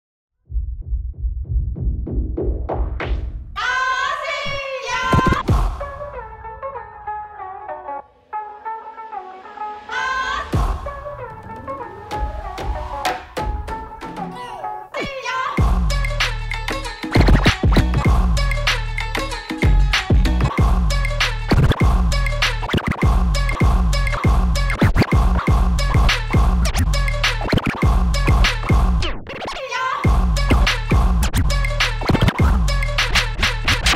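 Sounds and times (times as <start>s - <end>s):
turntable scratching: 4.4s - 5.5s, 17.1s - 18.2s, 21.5s - 33.9s
hip hop beat with heavy bass: 4.5s - 7.2s, 10.3s - 33.9s.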